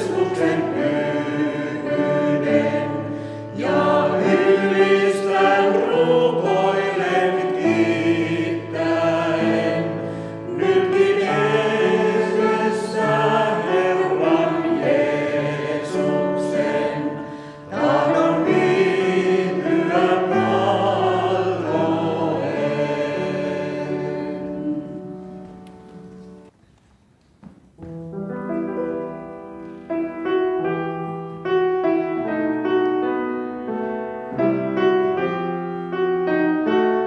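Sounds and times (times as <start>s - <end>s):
vocal quartet singing a hymn: 0.0s - 26.4s.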